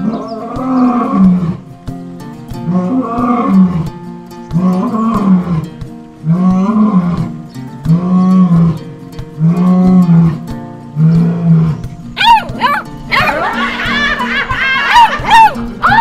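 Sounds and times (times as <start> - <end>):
lion roaring: 0.0 - 1.6, 2.7 - 3.9, 4.6 - 7.3, 7.9 - 8.8, 9.4 - 10.4, 11.0 - 13.6
high squeaky chirping calls: 11.0 - 16.0.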